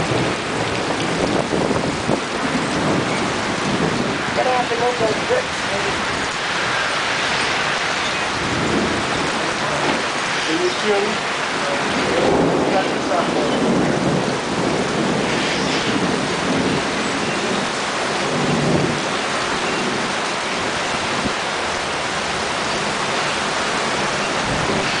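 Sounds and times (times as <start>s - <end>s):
low rumble of thunder: 0.0s - 6.8s, 7.4s - 10.3s, 11.8s - 23.1s, 23.8s - 25.0s
heavy rain falling: 0.0s - 25.0s.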